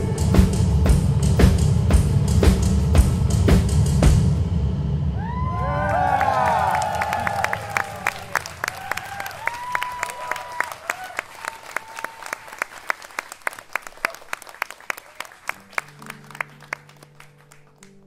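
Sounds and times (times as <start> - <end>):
audience applauding: 5.3 - 18.0.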